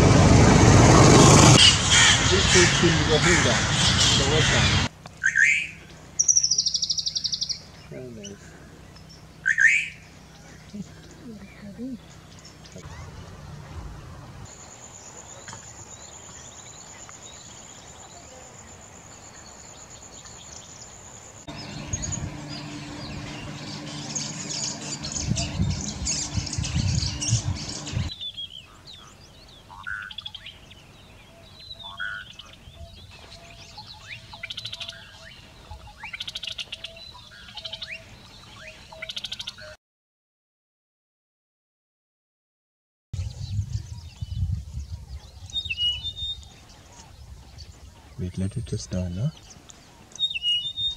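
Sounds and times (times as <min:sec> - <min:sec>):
wild birds calling: 0:00.0 - 0:39.8, 0:45.0 - 0:50.9
steady high tone: 0:21.5 - 0:28.1.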